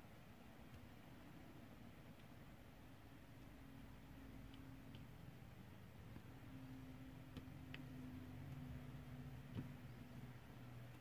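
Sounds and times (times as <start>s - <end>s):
faint low steady hum: 0.0s - 11.0s.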